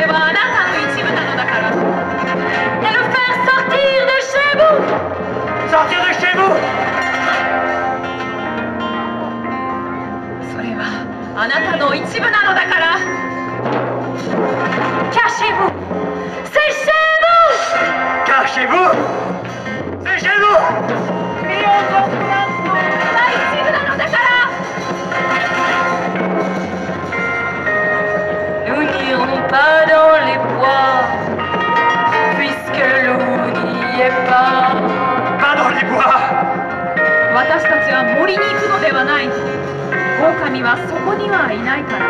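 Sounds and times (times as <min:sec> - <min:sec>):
drum kit playing: 0:00.0 - 0:42.0
live band with acoustic guitar: 0:00.0 - 0:42.0.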